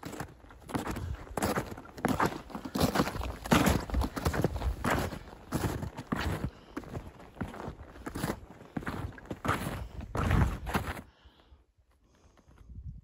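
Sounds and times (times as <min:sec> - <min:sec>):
snowshoe footsteps crunching snow: 0:00.0 - 0:11.0.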